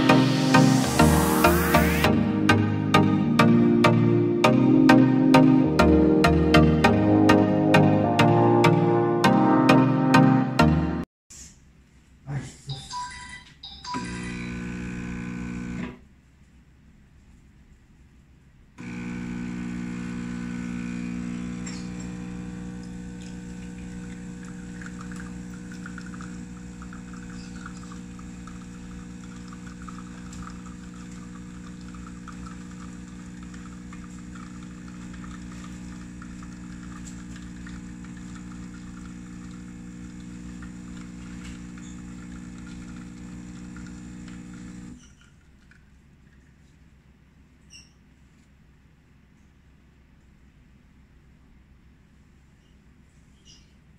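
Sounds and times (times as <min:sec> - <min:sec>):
espresso machine pump buzzing: 0:14.0 - 0:16.0, 0:18.8 - 0:45.1
coffee trickling into cups: 0:18.8 - 0:46.7.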